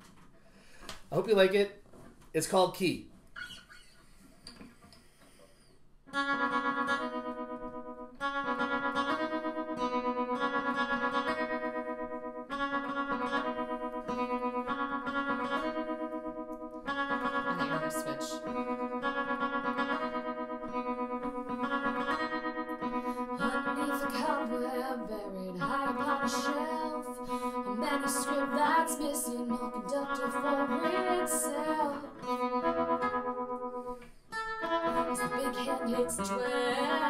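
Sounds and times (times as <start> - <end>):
acoustic guitar with tremolo: 3.4 - 37.0.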